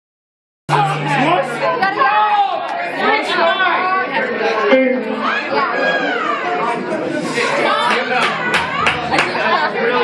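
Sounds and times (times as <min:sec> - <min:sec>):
crowd chatter: 0:00.7 - 0:10.0.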